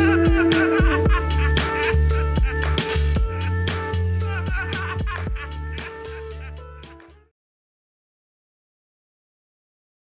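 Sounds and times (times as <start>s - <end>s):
held bass note: 0.0s - 4.2s
lo-fi electronic beat: 0.0s - 7.2s.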